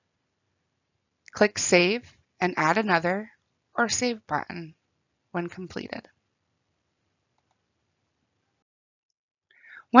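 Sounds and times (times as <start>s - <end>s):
woman speaking: 1.4s - 4.7s, 5.4s - 6.1s, 9.7s - 10.0s
faint breath: 9.5s - 9.9s.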